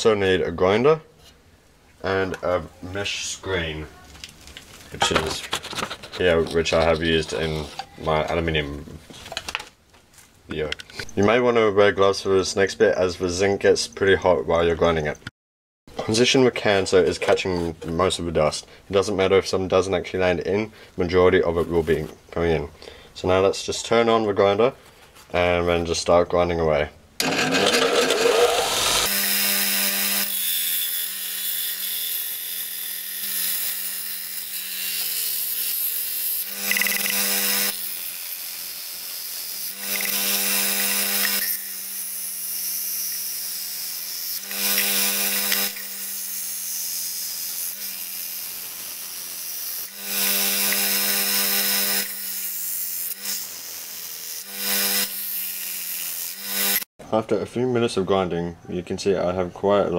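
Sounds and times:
metal grinding rasp on belt: 6.0s - 7.9s, 27.2s - 38.5s, 39.5s - 42.2s, 44.3s - 56.9s
belt sander motor hum: 27.2s - 33.0s, 44.4s - 46.1s.

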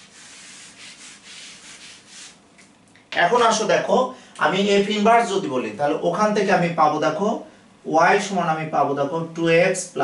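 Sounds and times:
eraser wiping whiteboard: 0.0s - 2.4s.

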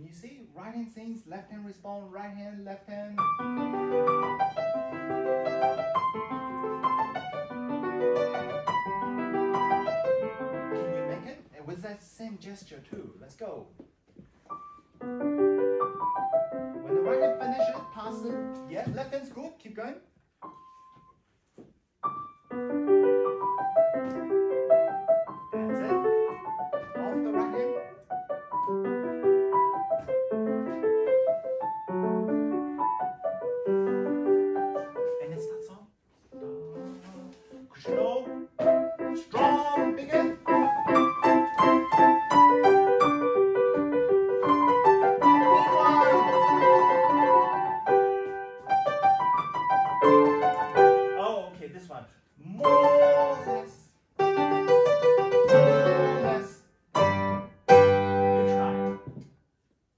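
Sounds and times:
classical piano piece: 3.1s - 11.4s, 14.3s - 19.0s, 20.3s - 51.4s, 52.6s - 59.4s.

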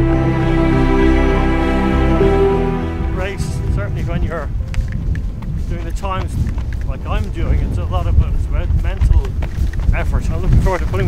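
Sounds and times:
man's voice: 1.5s - 4.6s, 10.0s - 11.0s
wind buffeting microphone: 2.2s - 11.0s.

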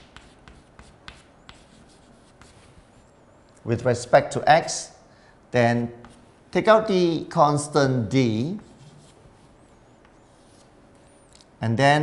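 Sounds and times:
chalk tapping and scraping: 0.0s - 3.1s, 6.0s - 6.4s, 8.4s - 11.5s.

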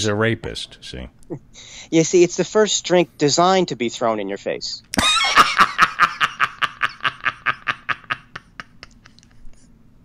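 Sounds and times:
man laughing: 5.0s - 9.4s.

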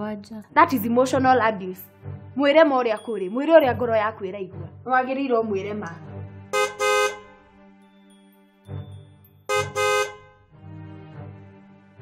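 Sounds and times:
soft background music: 0.0s - 12.0s
car horn honking: 6.6s - 7.5s, 9.5s - 10.5s.

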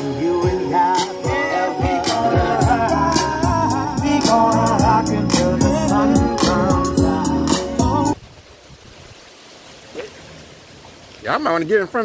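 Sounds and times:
outdoor background noise: 8.2s - 12.0s.

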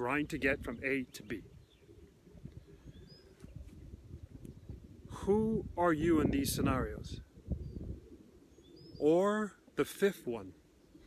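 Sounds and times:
faint bird chirp: 0.6s - 4.8s, 7.5s - 9.2s.

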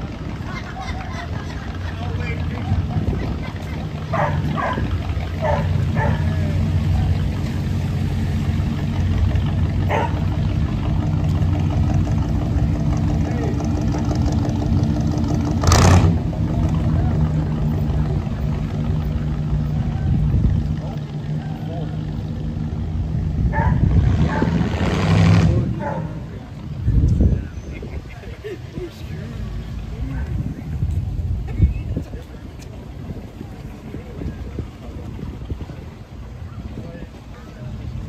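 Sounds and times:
car engine rumbling: 0.0s - 38.0s
loud engine burst: 23.9s - 25.8s.

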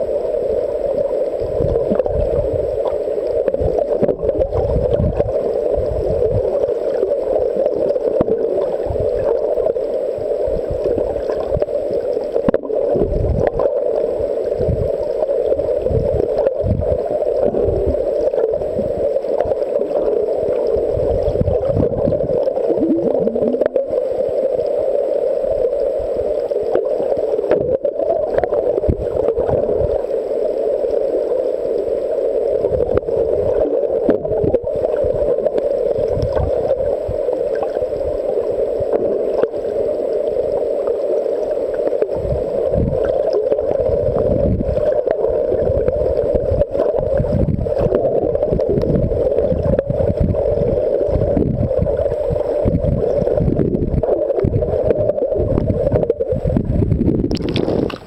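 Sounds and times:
muffled underwater hum: 0.0s - 58.0s
surges of moving water: 0.0s - 58.0s.

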